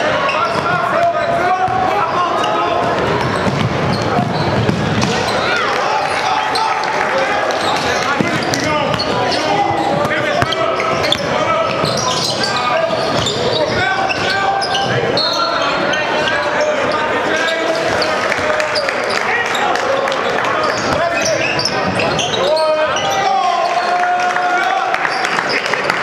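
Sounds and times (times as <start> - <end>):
people talking and calling out: 0.0 - 26.0
basketball dribbling on hardwood floor: 3.0 - 5.2.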